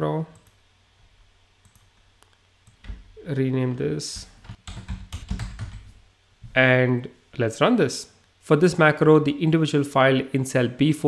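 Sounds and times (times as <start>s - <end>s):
low steady hum: 0.0s - 11.0s
computer mouse clicks: 1.6s - 3.0s.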